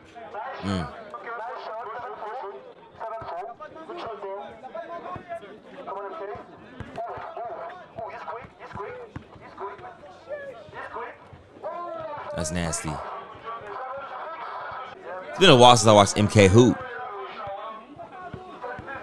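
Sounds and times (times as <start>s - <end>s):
people talking over one another: 0.3s - 6.4s, 9.6s - 17.8s.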